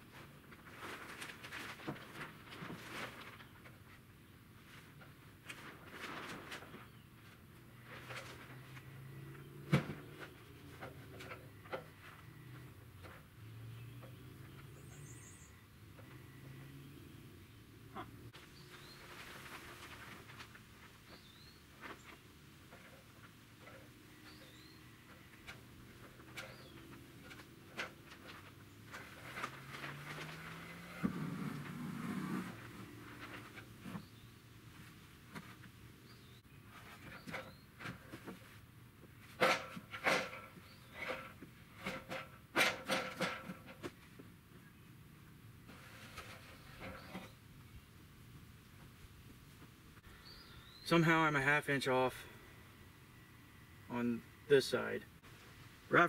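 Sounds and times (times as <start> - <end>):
small birds chirping: 8.6 - 38.6, 40.5 - 41.8, 44.5 - 48.0, 50.0 - 51.0.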